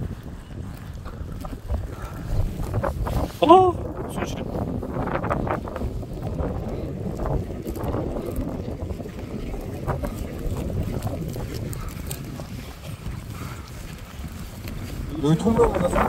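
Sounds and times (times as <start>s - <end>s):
footsteps on grass: 0.0s - 16.0s
wind rumbling on microphone: 0.0s - 16.0s
faint voices: 15.0s - 16.0s.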